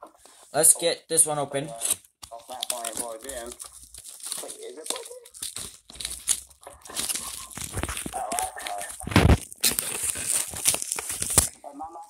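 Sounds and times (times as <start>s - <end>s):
plastic packaging crinkling: 1.7s - 11.6s.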